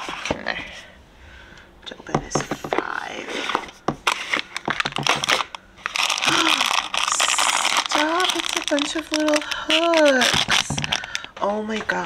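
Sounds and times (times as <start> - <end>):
plastic bag crinkling: 3.2 - 12.0.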